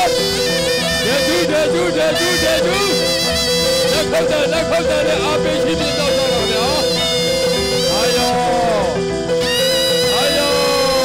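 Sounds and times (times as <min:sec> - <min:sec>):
reedy shawm melody: 0:00.0 - 0:11.0.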